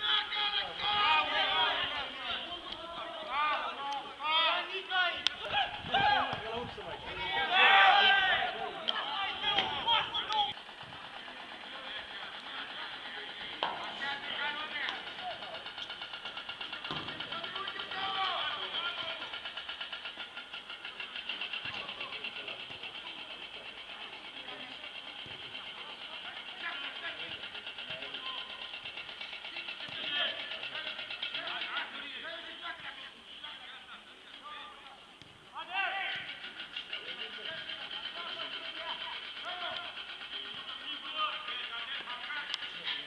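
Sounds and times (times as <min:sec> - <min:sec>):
footballers shouting: 0:00.0 - 0:43.0.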